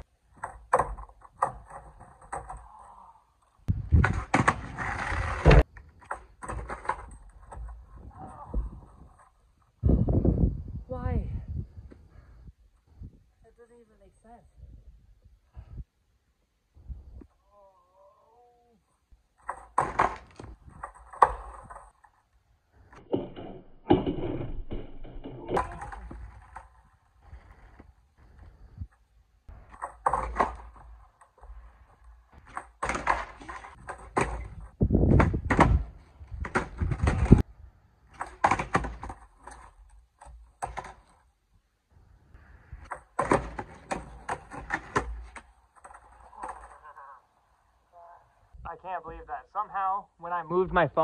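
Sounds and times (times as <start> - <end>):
skateboard rolling rumble: 0.1 - 10.6, 19.3 - 41.4
skateboard clattering on concrete: 0.3 - 2.7, 3.9 - 9.4, 19.3 - 22.3, 24.4 - 28.0, 29.6 - 41.2, 42.8 - 46.9.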